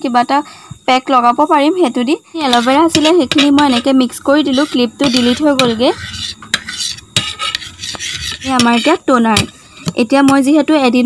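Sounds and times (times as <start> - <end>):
knife scraping a ceramic plate: 2.4 - 9.6.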